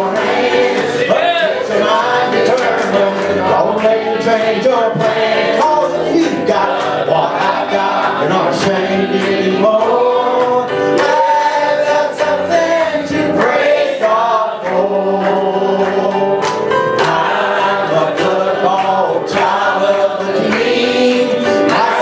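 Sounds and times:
choir singing a gospel song: 0.0 - 22.0
electric keyboard: 0.0 - 22.0
man singing into a microphone: 1.3 - 13.4, 14.0 - 16.4, 17.0 - 22.0.

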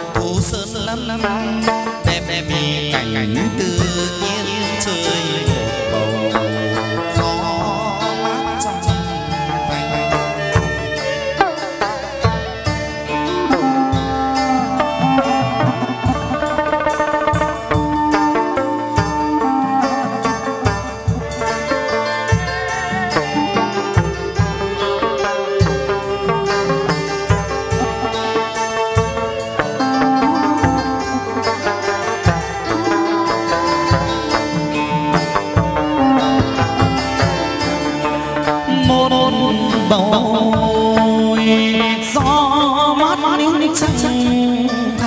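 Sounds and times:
bamboo flute: 0.0 - 45.0
drum strokes: 0.0 - 45.0
plucked lute with sliding notes: 0.0 - 45.0.

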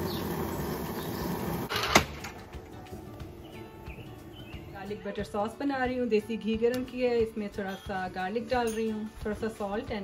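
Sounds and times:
gas grill burners rushing: 0.0 - 4.5.

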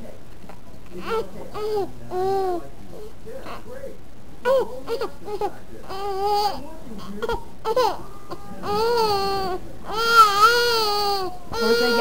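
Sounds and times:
infant crying: 7.6 - 12.0.

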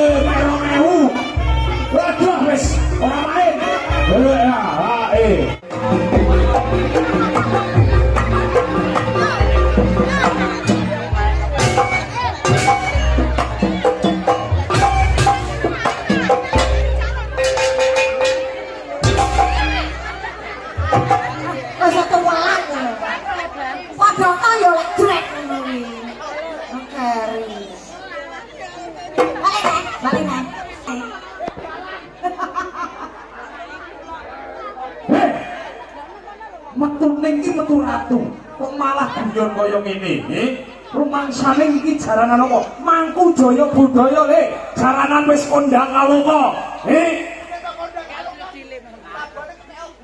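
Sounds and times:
crowd chatter: 0.0 - 50.0.

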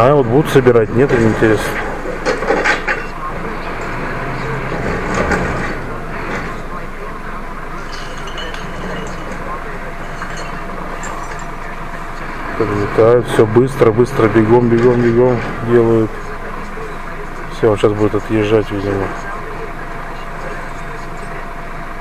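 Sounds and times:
garbage truck engine hum: 0.0 - 22.0
light clinks of bins: 7.8 - 12.3.

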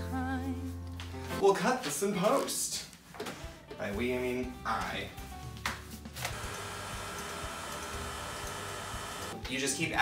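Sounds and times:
stand mixer whirring: 6.3 - 9.4.

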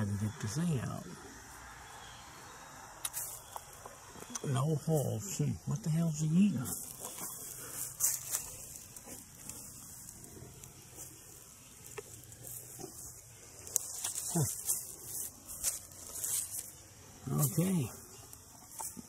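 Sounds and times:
high insect chorus: 0.0 - 19.0
leaves rustling: 1.2 - 19.0.

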